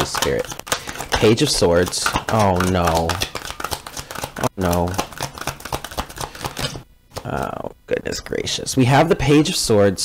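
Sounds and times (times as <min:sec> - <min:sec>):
cards being shuffled: 0:00.0 - 0:07.6.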